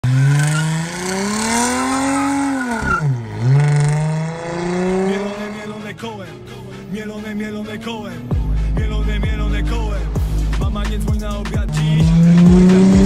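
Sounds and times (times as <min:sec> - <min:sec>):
car engine revving: 0:00.0 - 0:13.0.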